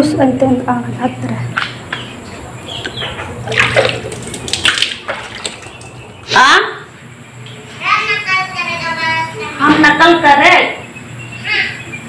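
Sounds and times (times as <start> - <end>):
water splashing and pouring: 3.4 - 6.2.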